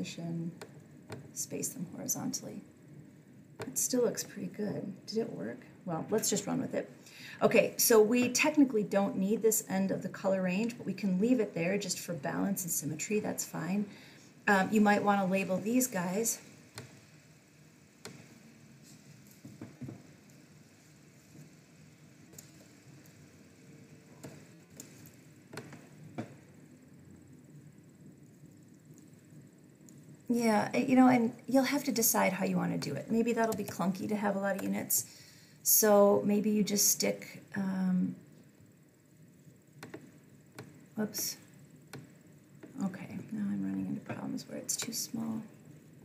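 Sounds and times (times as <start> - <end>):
room hiss: 0.0 - 46.0
computer mouse clicks: 33.4 - 33.8.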